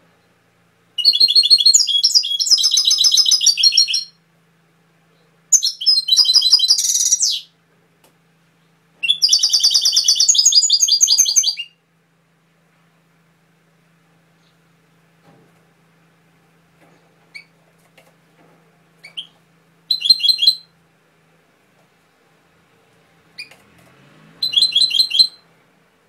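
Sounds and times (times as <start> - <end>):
goldfinch singing: 1.0 - 4.2, 5.5 - 7.5, 9.0 - 11.7, 19.0 - 20.7, 24.4 - 25.4.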